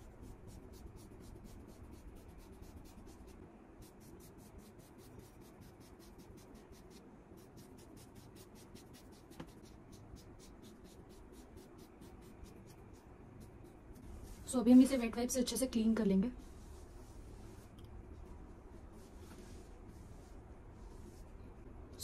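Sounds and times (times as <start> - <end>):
razor scraping across skin: 0.3 - 13.9.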